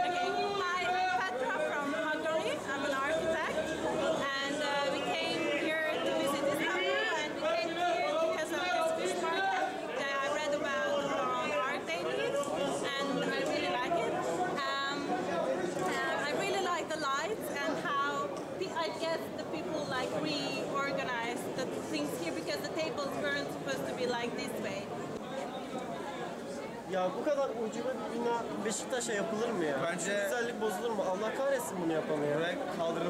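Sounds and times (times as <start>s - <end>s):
background chatter: 0.0s - 33.0s
woman talking: 15.9s - 24.9s.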